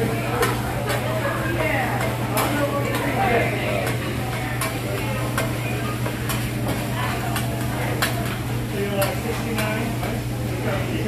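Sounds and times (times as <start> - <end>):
rice sizzling: 0.0 - 11.0.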